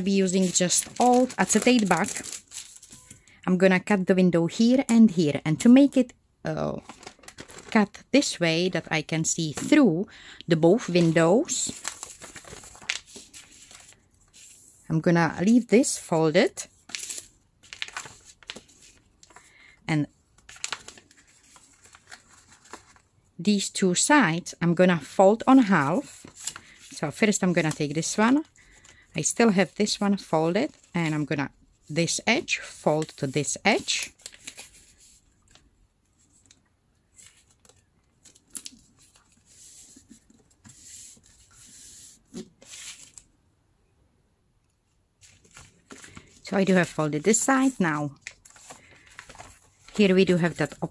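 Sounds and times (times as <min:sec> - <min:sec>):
newspaper rustling and crinkling: 0:00.0 - 0:03.3, 0:06.7 - 0:07.9, 0:10.6 - 0:14.7, 0:16.7 - 0:19.6, 0:20.3 - 0:23.1, 0:25.1 - 0:31.4, 0:32.1 - 0:43.3, 0:45.2 - 0:50.9.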